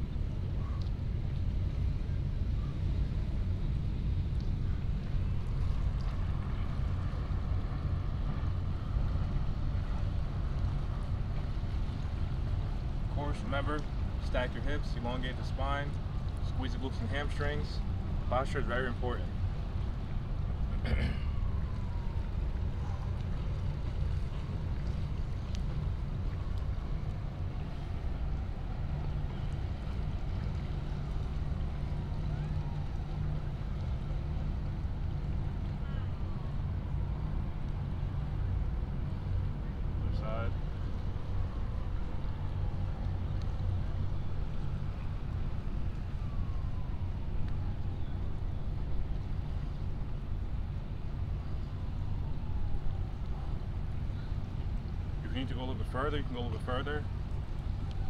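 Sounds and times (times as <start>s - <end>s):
wind rumble on microphone: 0.0s - 58.0s.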